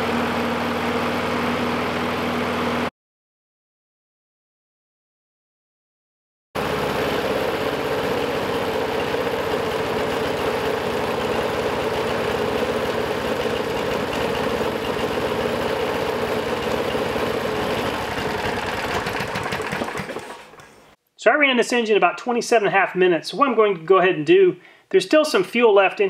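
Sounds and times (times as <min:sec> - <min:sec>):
lawn mower engine running: 0:00.0 - 0:02.9, 0:06.6 - 0:21.0.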